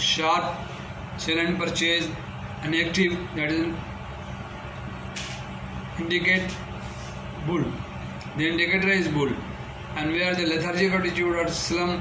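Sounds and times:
low background hum: 0:00.0 - 0:12.0
short hiss: 0:05.1 - 0:05.5.

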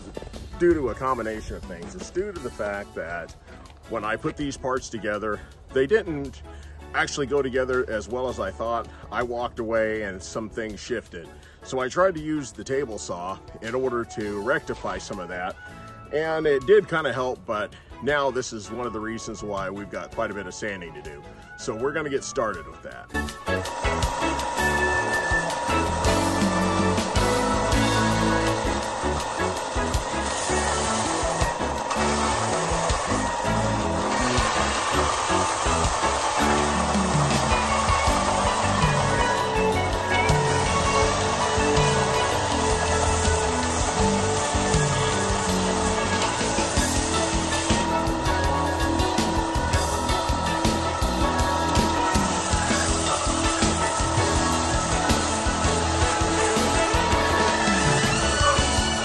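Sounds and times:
background music: 0:00.0 - 0:59.0
power sander sanding wood: 0:23.2 - 0:59.0.

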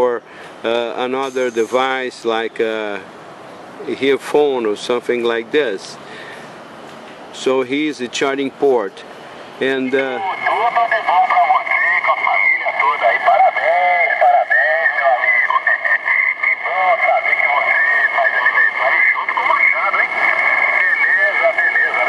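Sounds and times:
distant narrow-band radio voices: 0:00.0 - 0:06.6, 0:07.4 - 0:22.0.

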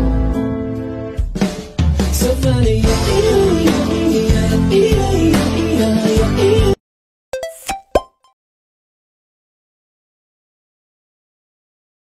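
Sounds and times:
quick pitched plinks: 0:07.4 - 0:08.4.

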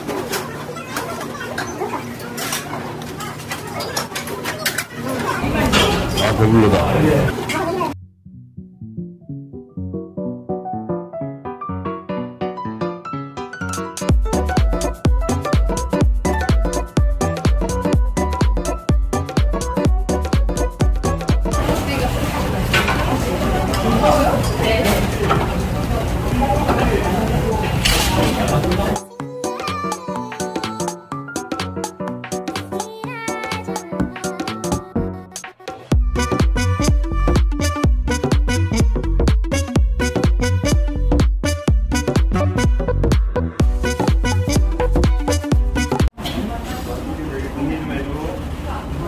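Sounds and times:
murmur of voices: 0:00.1 - 0:08.0, 0:21.6 - 0:29.1
utensils clicking against dishes: 0:00.2 - 0:06.4
background music: 0:08.0 - 0:22.0, 0:28.6 - 0:46.1.

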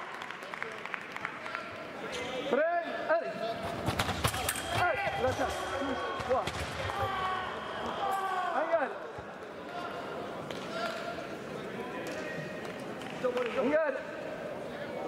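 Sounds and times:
people shouting: 0:04.8 - 0:08.7.

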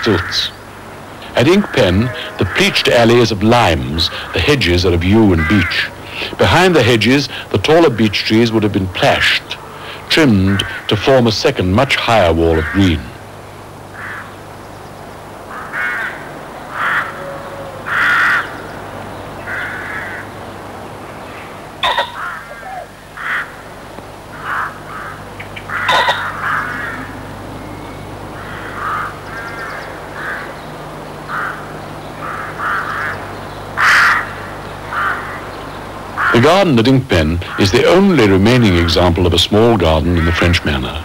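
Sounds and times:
birds calling: 0:00.0 - 0:41.0
steady low hum: 0:00.0 - 0:41.0.

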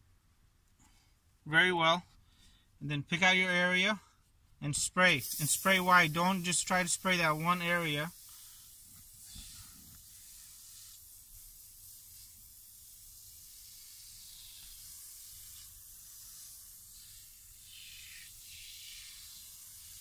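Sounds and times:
aerosol can spraying: 0:05.1 - 0:20.0.

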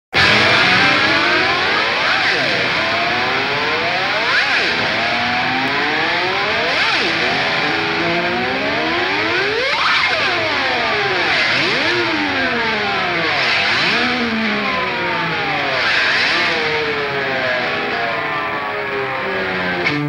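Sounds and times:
blues-rock band with phaser effect: 0:00.1 - 0:20.0.

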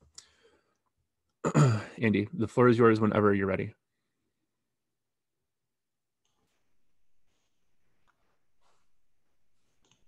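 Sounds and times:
man speaking: 0:01.6 - 0:03.8.

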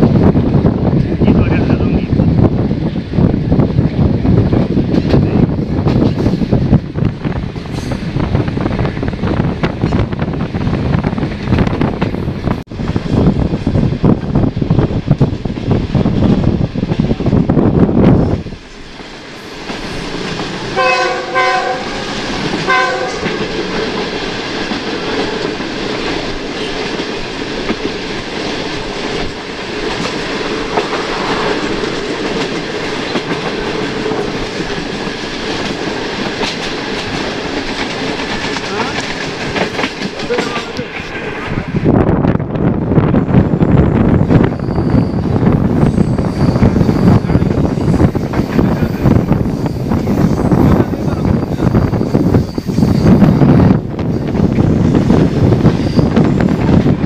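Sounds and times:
train rail and wheel noise: 0:00.0 - 0:57.0
wind buffeting microphone: 0:00.0 - 0:57.0
locomotive horn blasts: 0:20.8 - 0:22.0, 0:22.7 - 0:23.4.

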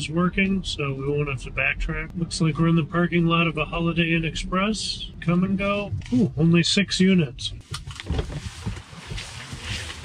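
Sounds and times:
microphone handling knocks: 0:07.5 - 0:09.7.

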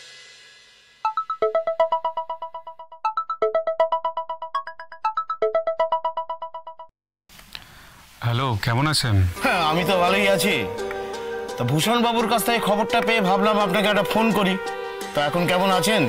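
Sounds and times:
mobile phone ringtone melody: 0:01.1 - 0:06.9.

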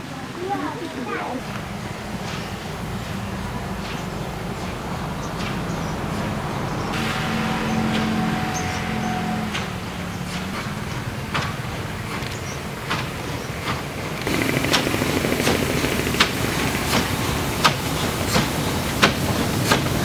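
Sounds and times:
motorbike engine passing: 0:00.0 - 0:19.1
steam locomotive rumble: 0:00.0 - 0:20.0
hiss of steam: 0:06.5 - 0:20.0.

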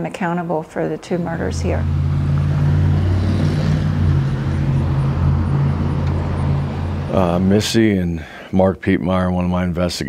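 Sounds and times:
road traffic rumble: 0:00.0 - 0:08.5.

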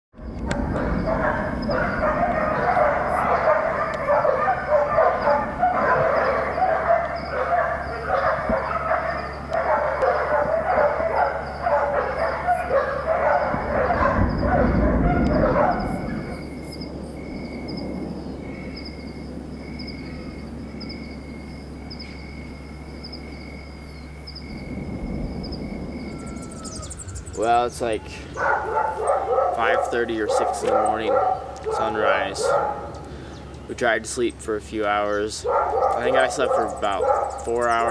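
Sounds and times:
dogs barking: 0:00.2 - 0:17.0, 0:27.4 - 0:33.1, 0:34.8 - 0:37.9
steady high chirring: 0:15.8 - 0:29.0.

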